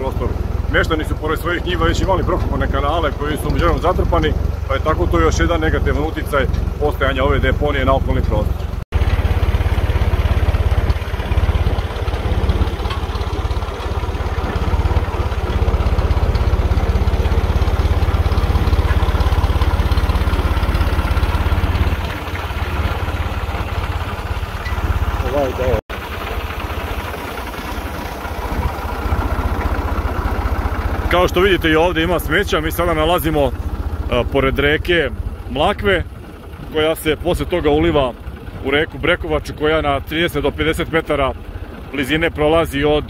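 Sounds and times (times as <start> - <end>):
wind buffeting microphone: 28.3 - 29.4.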